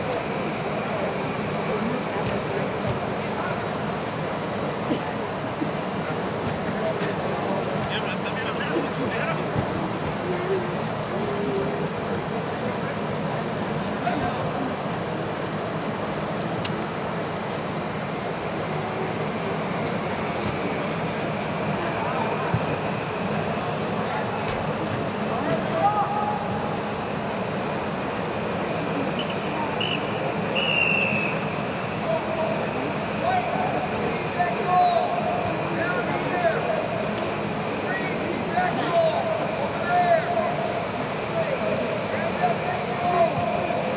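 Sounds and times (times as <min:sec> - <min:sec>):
fans rushing: 0:00.0 - 0:43.9
high whistle: 0:29.1 - 0:31.6
distant echoing shouts: 0:29.1 - 0:36.9.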